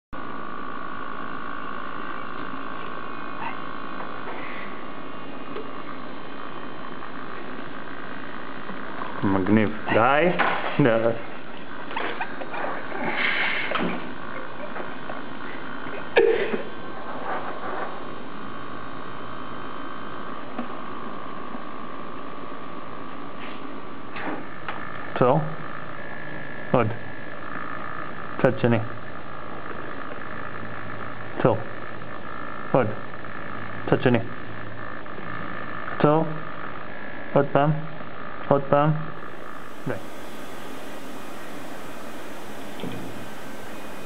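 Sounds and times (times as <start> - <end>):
servo motors whining: 39.2 - 44.0.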